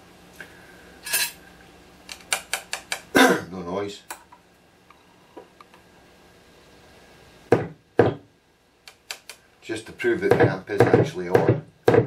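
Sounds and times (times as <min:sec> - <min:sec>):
faint amplifier hum: 0:00.0 - 0:12.0
sharp knocks: 0:07.5 - 0:08.3, 0:10.3 - 0:12.0.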